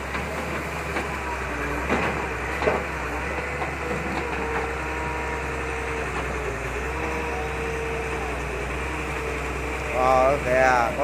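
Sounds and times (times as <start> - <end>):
excavator diesel engine running: 0.0 - 11.0.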